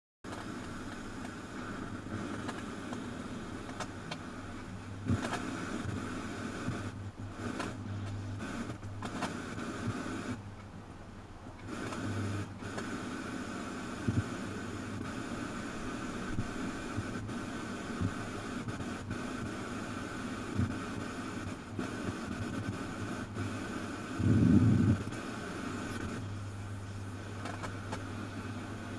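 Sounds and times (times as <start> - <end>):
electrical hum and hiss: 0.2 - 28.9
faint whine: 0.3 - 28.9.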